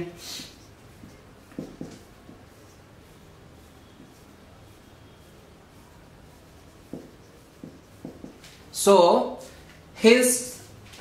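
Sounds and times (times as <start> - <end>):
marker strokes on a whiteboard: 0.0 - 11.0.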